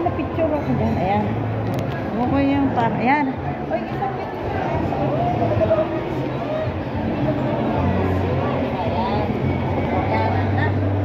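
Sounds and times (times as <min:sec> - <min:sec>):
passers-by chattering: 0:00.0 - 0:11.0.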